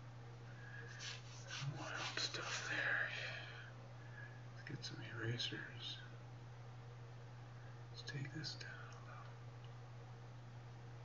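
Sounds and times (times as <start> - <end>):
steady low hum: 0.0 - 11.0
person whispering: 1.5 - 3.6, 4.6 - 6.1, 8.0 - 9.4.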